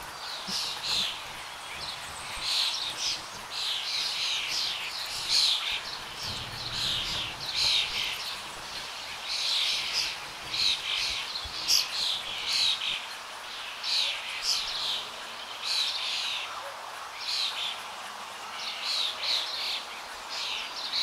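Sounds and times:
small birds chirping: 0.0s - 21.0s.

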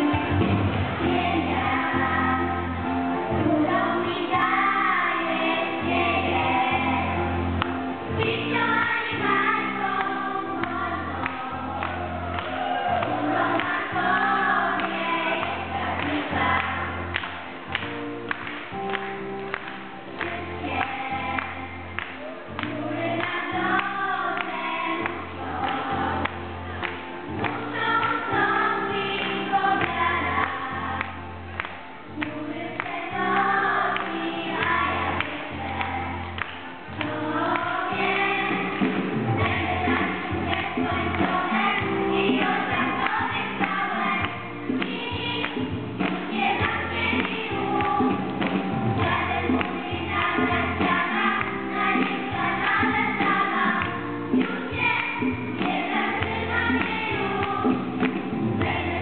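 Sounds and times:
children's choir singing a hymn: 0.0s - 17.8s, 18.4s - 59.0s.

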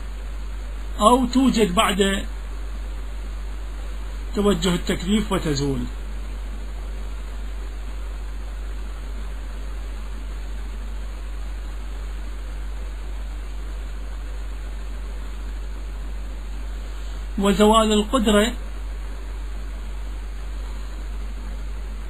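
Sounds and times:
constant low hum: 0.0s - 22.0s.

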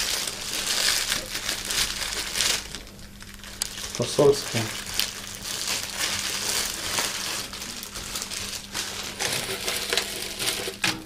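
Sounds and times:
rustling and crinkling of items: 0.0s - 11.0s.

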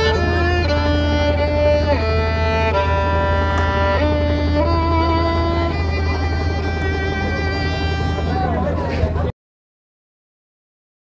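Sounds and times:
violin long bowed note: 0.0s - 9.0s
steady low hum: 0.0s - 9.3s.

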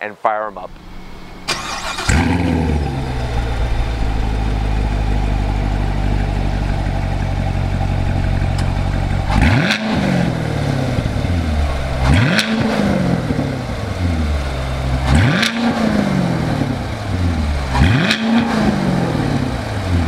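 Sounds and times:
car engine idling and revving: 0.5s - 20.0s.

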